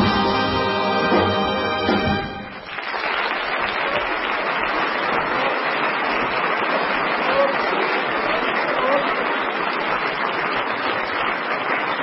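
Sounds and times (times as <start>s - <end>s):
audience applauding: 1.0s - 12.0s.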